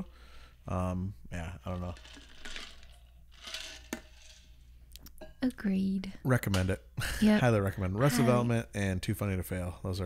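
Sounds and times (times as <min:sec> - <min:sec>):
soft breath: 0:00.0 - 0:00.6.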